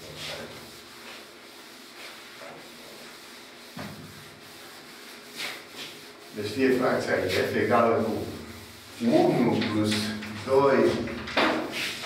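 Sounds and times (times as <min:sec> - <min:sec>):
cloth rubbing on chalkboard: 0:00.0 - 0:12.0.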